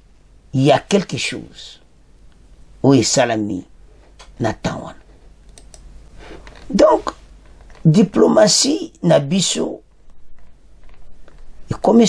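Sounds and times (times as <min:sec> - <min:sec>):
person speaking: 0:00.5 - 0:01.9, 0:02.8 - 0:10.4, 0:11.5 - 0:12.0
light clicking: 0:05.5 - 0:05.9.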